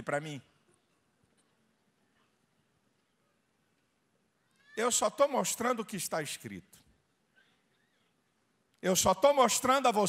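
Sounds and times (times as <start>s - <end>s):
man speaking into a microphone: 0.0s - 0.6s, 4.8s - 6.9s, 8.8s - 10.0s.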